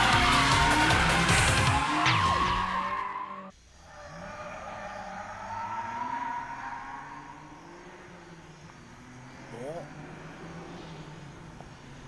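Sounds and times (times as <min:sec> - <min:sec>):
tyre squeal: 0:00.0 - 0:07.5
car engine revving: 0:00.0 - 0:12.0.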